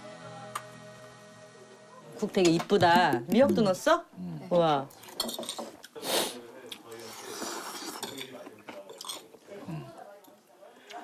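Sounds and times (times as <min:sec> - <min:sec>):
spoons clinking against ceramic bowls: 0:05.0 - 0:05.8.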